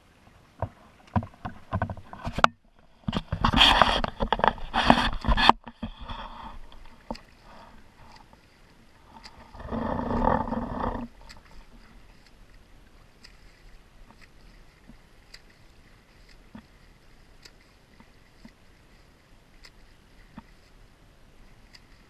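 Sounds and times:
water splashing: 0:00.0 - 0:22.0.

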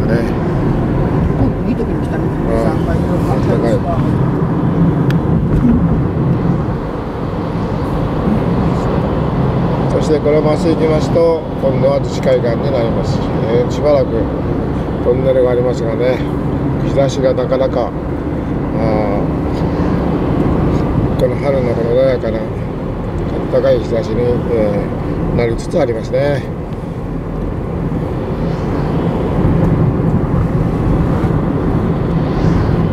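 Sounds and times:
car road and engine noise: 0:00.0 - 0:32.9.

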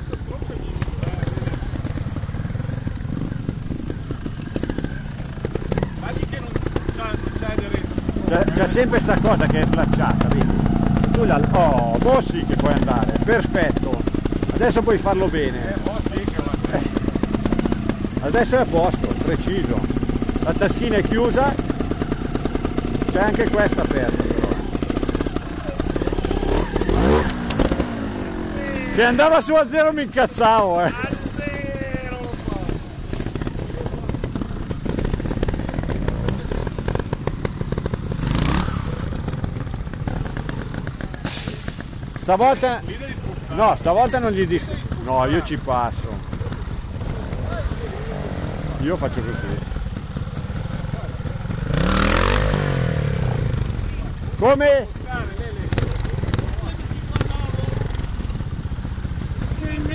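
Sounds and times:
motorcycle engine idling and revving: 0:00.0 - 0:59.9.

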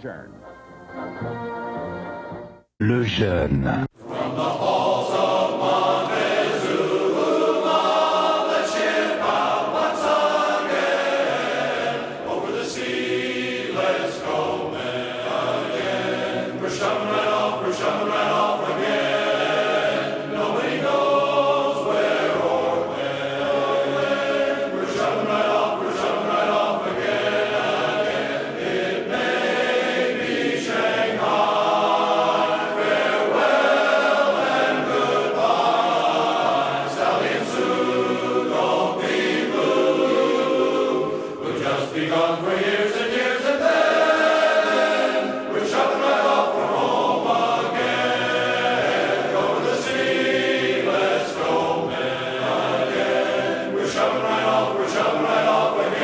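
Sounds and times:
choir singing: 0:04.0 - 0:56.0.

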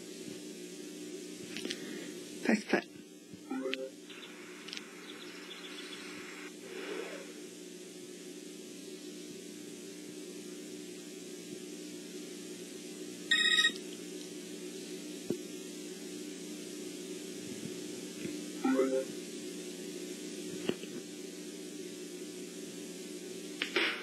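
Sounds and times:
electrical hum: 0:00.0 - 0:24.0.

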